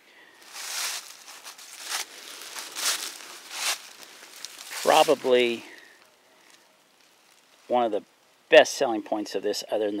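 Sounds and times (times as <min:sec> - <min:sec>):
dry rustling and crunching: 0:00.3 - 0:08.0.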